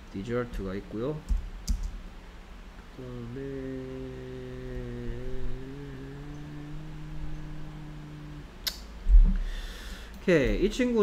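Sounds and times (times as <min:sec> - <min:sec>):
man humming: 0:02.9 - 0:09.6.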